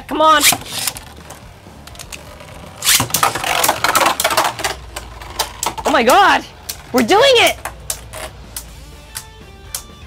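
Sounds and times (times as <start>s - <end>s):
spinning tops clashing and rattling: 0.4s - 1.3s, 2.7s - 6.8s.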